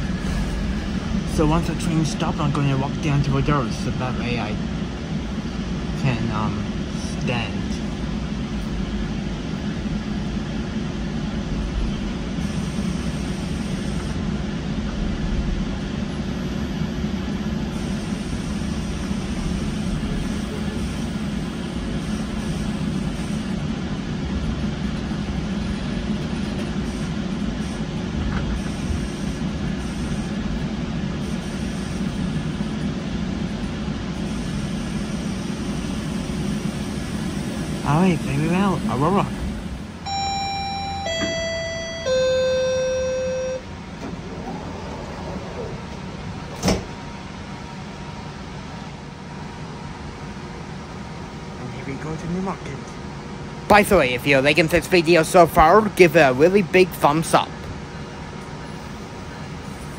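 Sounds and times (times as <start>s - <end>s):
train rumble and hum: 0.0s - 59.9s
three-note door chime: 40.1s - 43.6s.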